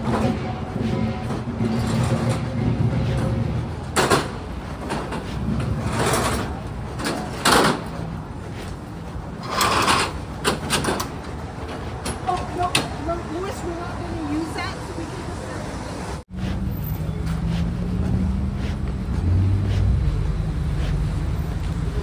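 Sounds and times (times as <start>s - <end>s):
low traffic rumble: 0.0s - 22.0s.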